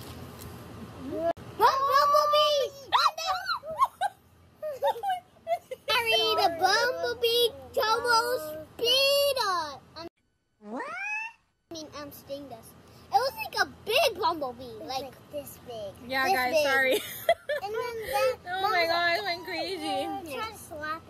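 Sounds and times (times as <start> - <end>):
children exclaiming excitedly: 1.6 - 4.1, 5.8 - 9.5.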